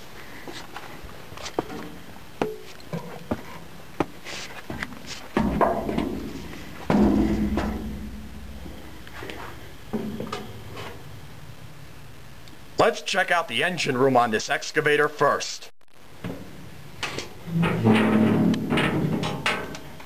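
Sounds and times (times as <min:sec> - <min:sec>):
steps on steel deck: 0:00.0 - 0:11.0
boots on steel stairs: 0:01.4 - 0:11.0
heavy booming thuds: 0:05.4 - 0:10.6.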